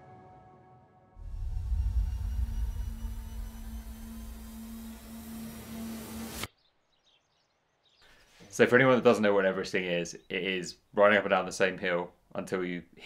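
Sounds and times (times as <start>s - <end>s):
deep steady rumble: 1.2s - 6.2s
low hum: 1.2s - 6.5s.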